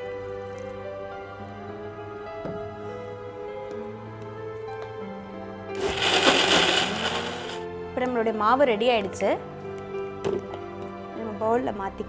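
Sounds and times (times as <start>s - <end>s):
background music: 0.0s - 12.0s
electric mixer grinder grinding: 5.8s - 7.6s.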